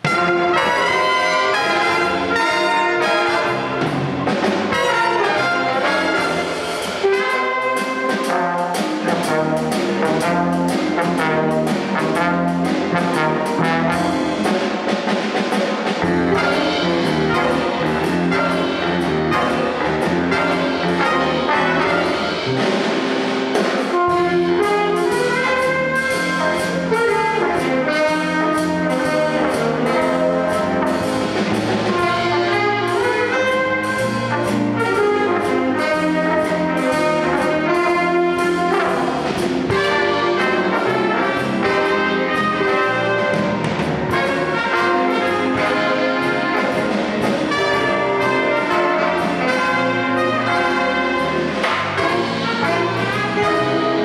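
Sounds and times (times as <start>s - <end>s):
big band jazz: 0.0s - 54.0s.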